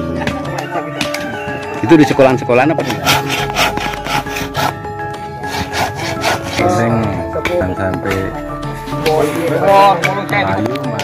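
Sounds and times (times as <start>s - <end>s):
music: 0.0s - 11.0s
hand saw cutting wood: 2.7s - 4.8s, 5.4s - 6.9s.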